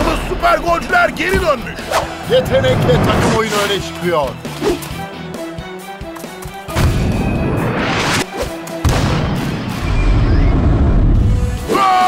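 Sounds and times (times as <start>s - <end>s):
background music: 0.0s - 12.0s
deep rumble: 2.2s - 3.4s.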